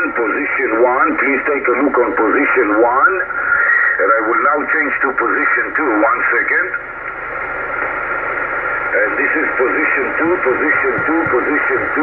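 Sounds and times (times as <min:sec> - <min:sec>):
radio static hiss from speaker: 0:00.0 - 0:12.0.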